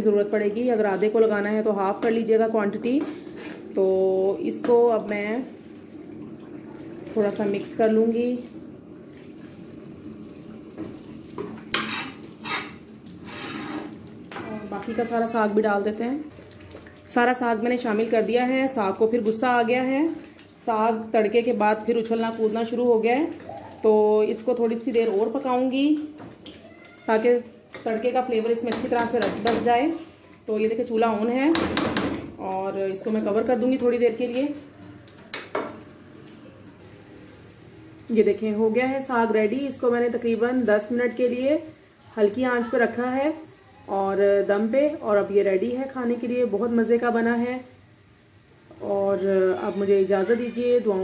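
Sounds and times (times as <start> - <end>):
ladle stirring thick greens: 10.2 - 15.4
ladle scraping and knocking pan: 10.8 - 14.4.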